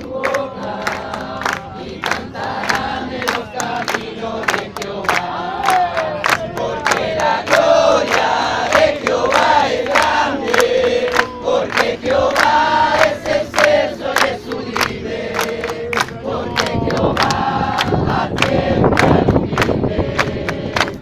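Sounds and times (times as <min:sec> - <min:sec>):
crowd singing: 0:00.0 - 0:21.0
hands clapping: 0:00.0 - 0:21.0.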